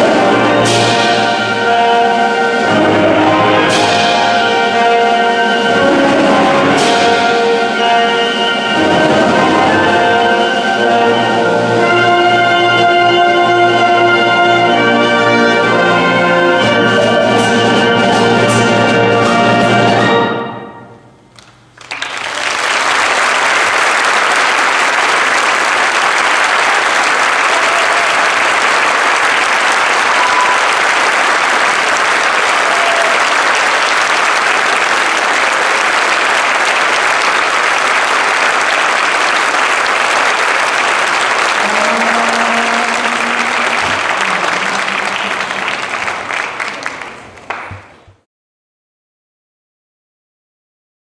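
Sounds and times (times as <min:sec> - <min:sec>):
band music: 0:00.0 - 0:21.3, 0:24.4 - 0:47.8
audience applauding: 0:21.4 - 0:48.2.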